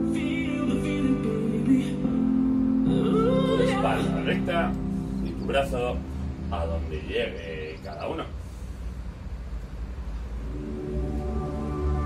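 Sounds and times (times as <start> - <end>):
person singing: 0.0 - 4.9
music with held chords: 0.0 - 7.8, 10.3 - 12.0.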